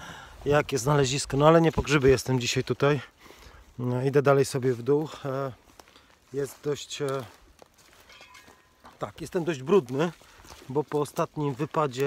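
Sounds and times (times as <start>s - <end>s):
man's voice: 0.4s - 3.1s, 3.8s - 5.6s, 6.3s - 7.4s, 9.0s - 12.0s
footsteps in leaf litter: 0.4s - 12.0s.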